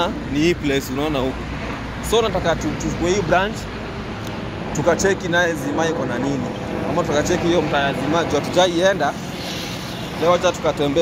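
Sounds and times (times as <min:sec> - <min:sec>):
road traffic: 0:00.0 - 0:11.0.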